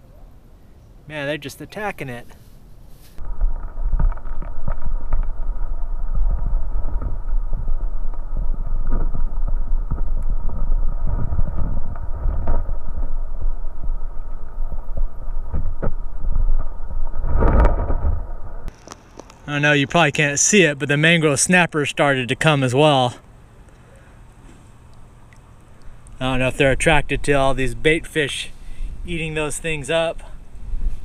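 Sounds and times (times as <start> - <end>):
underwater rumble of moving water: 3.2 - 18.7.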